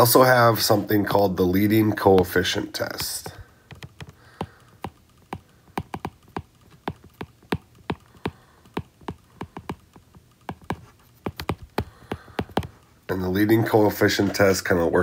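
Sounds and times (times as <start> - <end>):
stylus tapping on glass screen: 3.0 - 12.8.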